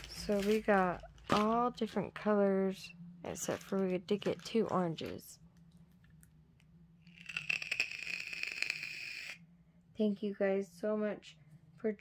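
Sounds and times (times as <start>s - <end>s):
plastic packaging crinkling: 0.0s - 2.0s.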